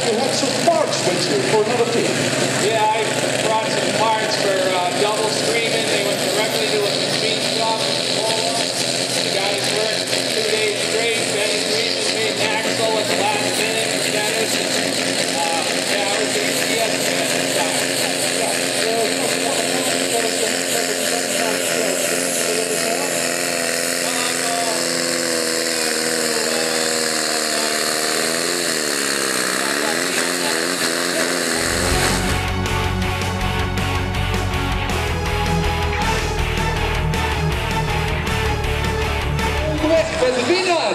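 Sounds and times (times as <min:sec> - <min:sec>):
tractor engine running hard: 0:00.0 - 0:40.9
heavy music with strong beat: 0:31.5 - 0:40.9.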